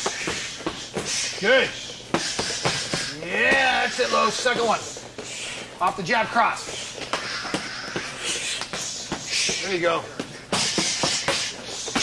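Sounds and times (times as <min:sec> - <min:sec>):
hissing breath: 0:00.0 - 0:03.2, 0:03.9 - 0:05.8, 0:06.6 - 0:09.8, 0:10.4 - 0:12.0
blows slapping focus mitts: 0:00.0 - 0:06.0, 0:06.6 - 0:12.0
feet shuffling: 0:00.0 - 0:12.0.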